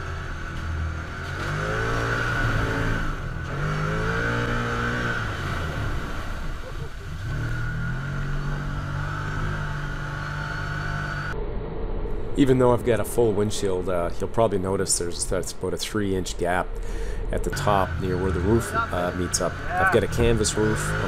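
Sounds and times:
off-road vehicle engine accelerating: 0:00.0 - 0:11.8, 0:17.3 - 0:21.0.

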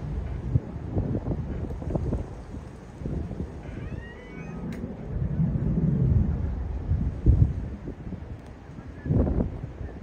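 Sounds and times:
jet engines rumbling: 0:00.0 - 0:10.0
wind buffeting microphone: 0:00.0 - 0:10.0.

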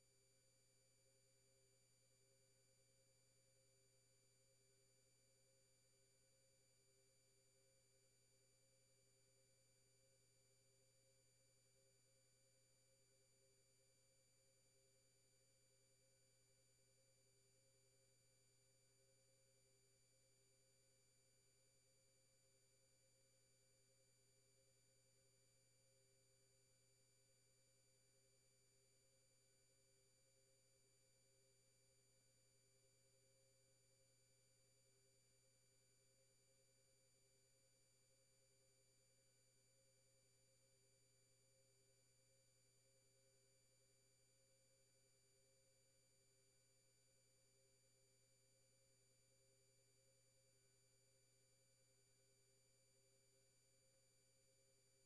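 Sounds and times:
faint steady hum: 0:00.0 - 0:55.0.

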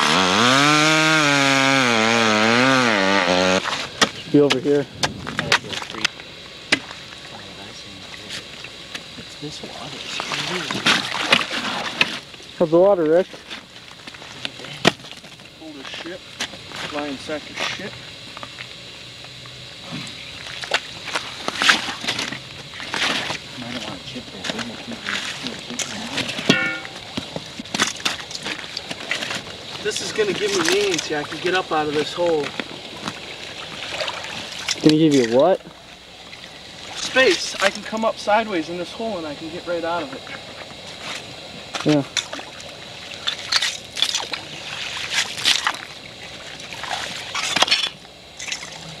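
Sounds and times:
slushy water and ice sloshing: 0:10.0 - 0:12.3, 0:20.4 - 0:23.8, 0:27.8 - 0:38.0, 0:42.0 - 0:49.0
ice chunks and slush splashing: 0:43.2 - 0:48.8.

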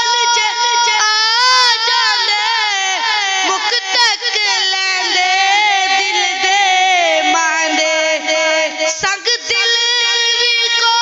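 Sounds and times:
boy singing into a microphone: 0:00.0 - 0:11.0.

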